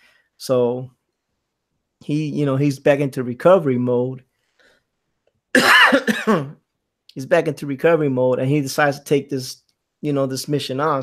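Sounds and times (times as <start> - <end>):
man coughing: 5.6 - 6.6.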